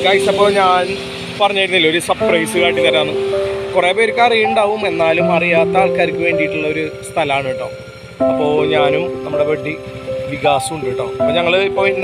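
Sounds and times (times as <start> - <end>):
background music with held notes: 0.0 - 12.0
man talking: 0.0 - 12.0.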